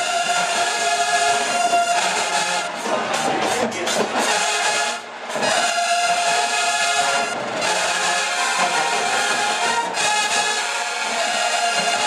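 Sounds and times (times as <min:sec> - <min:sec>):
brass marching band playing: 0:00.0 - 0:12.0.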